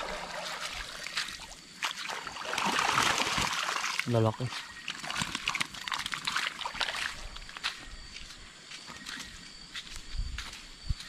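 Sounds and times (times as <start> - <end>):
water splashing and trickling: 0.0 - 7.8.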